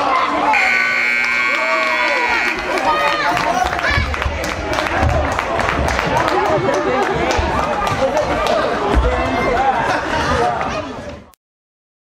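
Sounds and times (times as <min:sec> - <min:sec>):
scoreboard buzzer: 0:00.5 - 0:03.2.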